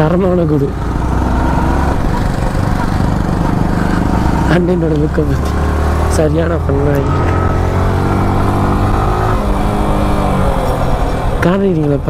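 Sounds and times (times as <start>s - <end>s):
motorcycle engine rumbling: 0.0s - 12.0s.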